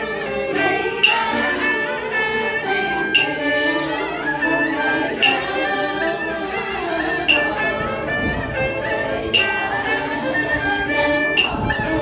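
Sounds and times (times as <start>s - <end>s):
voices chanting a prayer: 0.0s - 12.0s
sharp percussive strike: 1.0s - 1.6s, 3.1s - 3.4s, 5.1s - 5.5s, 7.2s - 7.7s, 9.3s - 9.7s, 11.4s - 11.6s
short ringing tone: 1.0s - 1.7s, 3.1s - 3.4s, 7.2s - 7.7s, 9.3s - 9.9s.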